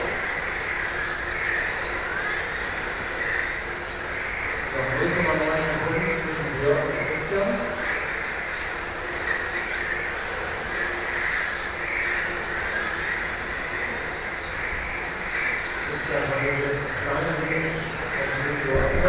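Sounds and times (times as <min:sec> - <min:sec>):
steady rushing hiss: 0:00.0 - 0:19.0.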